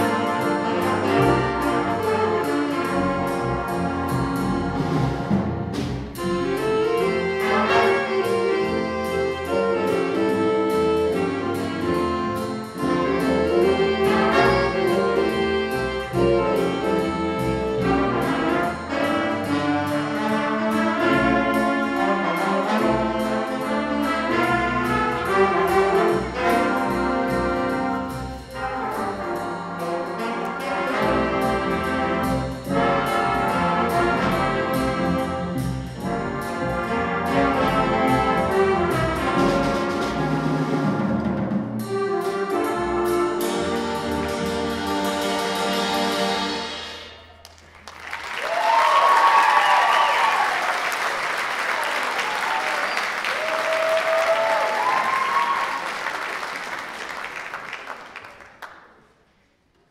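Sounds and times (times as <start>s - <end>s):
brass section playing tune: 0.0s - 47.3s
jazz big band playing: 0.0s - 58.0s.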